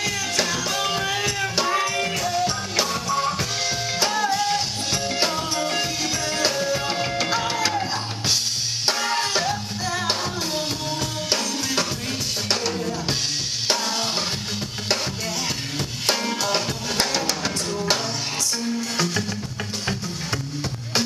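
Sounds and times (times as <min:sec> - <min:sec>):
woman singing into a microphone: 0:00.0 - 0:08.3, 0:08.9 - 0:14.4, 0:15.0 - 0:18.6
drum kit: 0:00.0 - 0:21.0
live band playing: 0:00.0 - 0:21.0.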